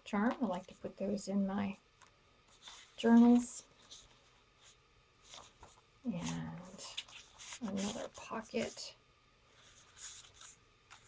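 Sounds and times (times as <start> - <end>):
paper cards rustling: 2.5 - 8.9, 9.5 - 11.0.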